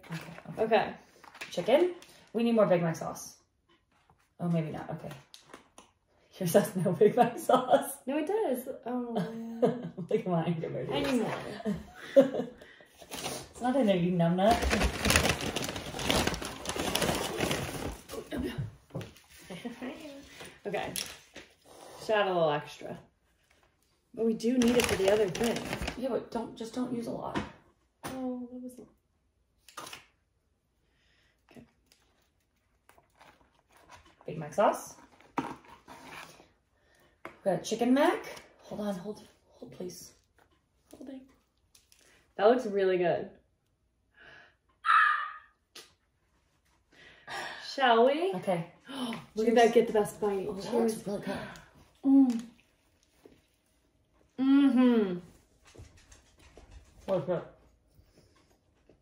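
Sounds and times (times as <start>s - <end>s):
paper bag crinkling: 14.4s - 18.2s, 24.6s - 26.0s.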